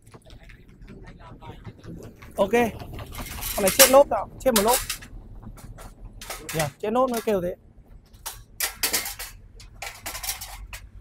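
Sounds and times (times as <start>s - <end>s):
sharp metallic knocks: 0.0s - 11.0s
metal ramp clattering and scraping: 0.8s - 11.0s.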